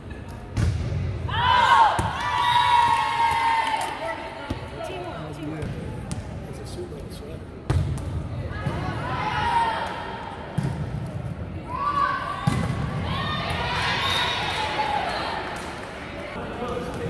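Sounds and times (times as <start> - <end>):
volleyball hits: 9.8 - 11.3, 12.3 - 13.9.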